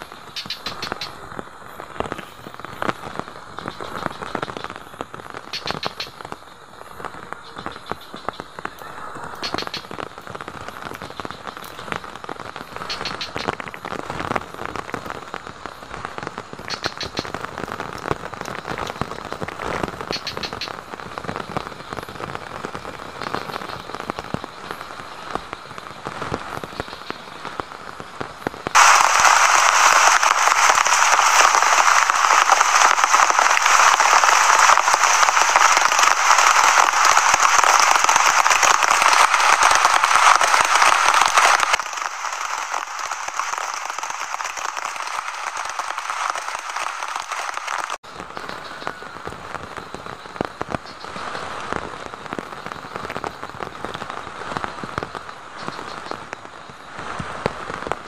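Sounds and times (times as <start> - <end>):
campfire crackling: 0.0 - 58.0
rain beating on plastic sheet: 0.0 - 58.0
steady rain: 0.0 - 58.0.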